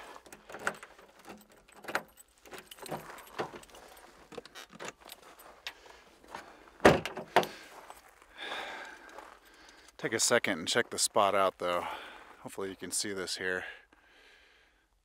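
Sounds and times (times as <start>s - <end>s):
backpack rustling: 0.0s - 6.8s
keys jangling: 0.2s - 5.8s
car door shutting: 6.8s - 7.5s.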